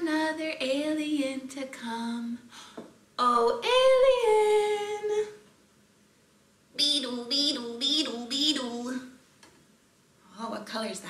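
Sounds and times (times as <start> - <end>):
woman singing a long call: 0.0 - 2.5, 3.2 - 5.4.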